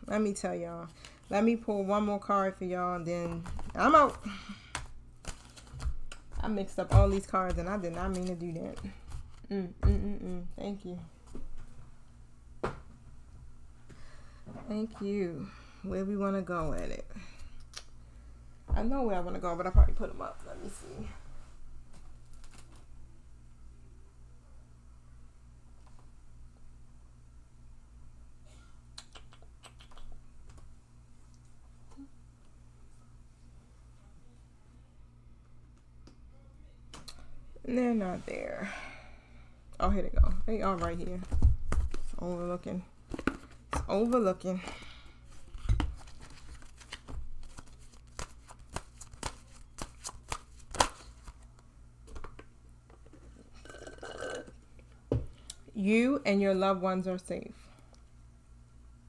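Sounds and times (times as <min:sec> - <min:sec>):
woman speaking: 0:00.0 - 0:04.4, 0:06.4 - 0:11.1, 0:14.6 - 0:17.2, 0:18.7 - 0:21.1, 0:37.6 - 0:38.8, 0:39.8 - 0:41.4, 0:42.2 - 0:42.9, 0:43.8 - 0:44.7, 0:55.7 - 0:57.6
low steady hum: 0:00.0 - 0:59.0.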